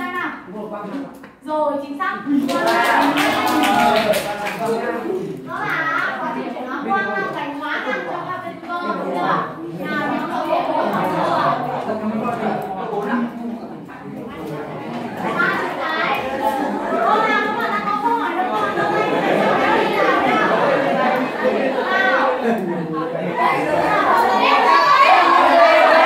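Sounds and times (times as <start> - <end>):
students chattering: 0.0 - 26.0
students calling out over each other: 23.3 - 26.0.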